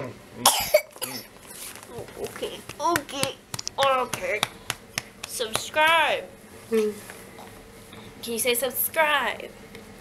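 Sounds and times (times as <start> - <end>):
child coughing: 0.4 - 1.3.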